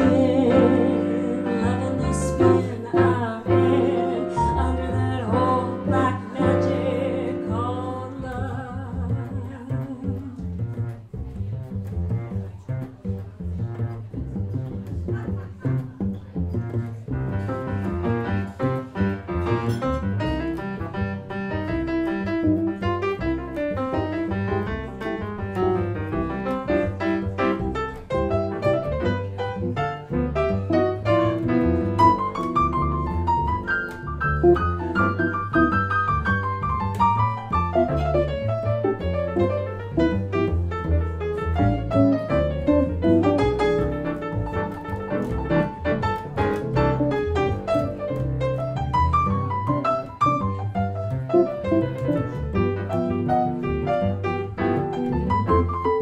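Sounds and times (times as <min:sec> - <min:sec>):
jazz combo playing: 0:00.0 - 0:56.0
plucked double bass: 0:00.0 - 0:56.0.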